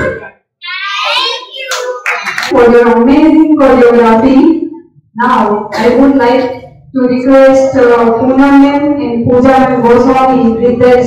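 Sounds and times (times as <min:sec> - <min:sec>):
child calling out: 0:00.6 - 0:02.0
hand claps: 0:01.6 - 0:02.6.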